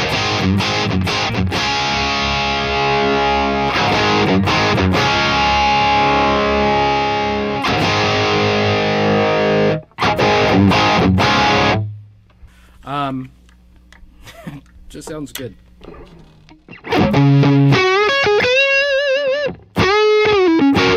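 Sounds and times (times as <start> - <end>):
distorted electric guitar chords: 0.0 - 12.1, 15.8 - 20.9.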